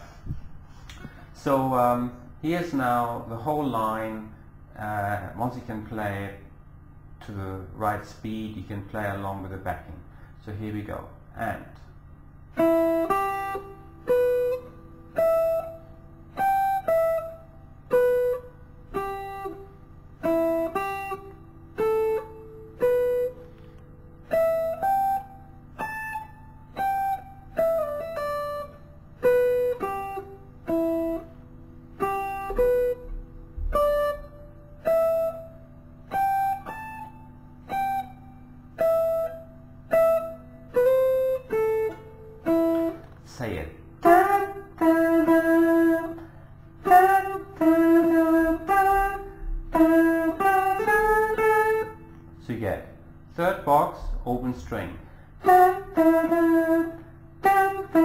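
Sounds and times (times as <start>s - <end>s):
guitar picking slow notes: 11.4s - 58.0s.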